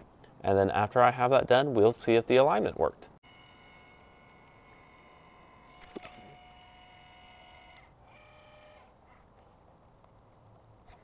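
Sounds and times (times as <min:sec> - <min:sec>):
telescope motors whining: 0:03.2 - 0:09.2.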